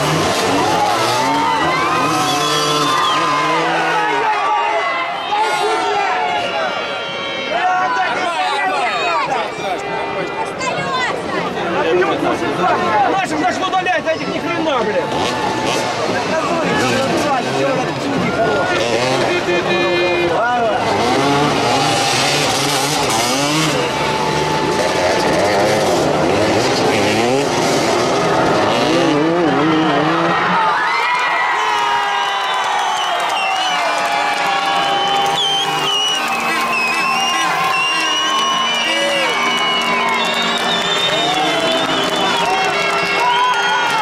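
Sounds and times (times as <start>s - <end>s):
motorcycle engines revving: 0.0s - 6.8s, 9.2s - 30.8s, 33.6s - 44.0s
crowd voices: 0.0s - 44.0s.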